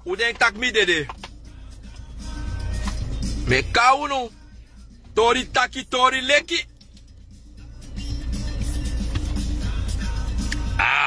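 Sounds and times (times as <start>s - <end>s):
quiet background music: 0.0s - 11.0s
vehicle rumble inside car: 4.4s - 11.0s.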